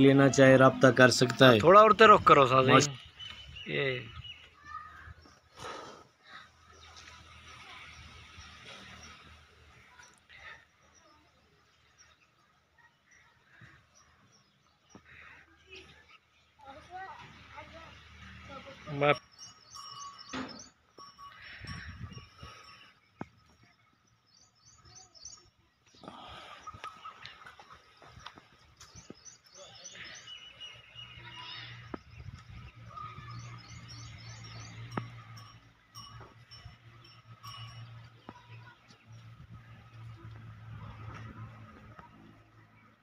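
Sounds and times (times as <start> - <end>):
small birds chirping: 0.0 - 43.0.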